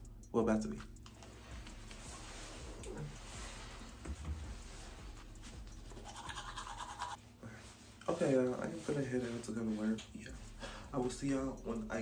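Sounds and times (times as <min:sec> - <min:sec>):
toothbrush scrubbing teeth: 0:05.9 - 0:07.2.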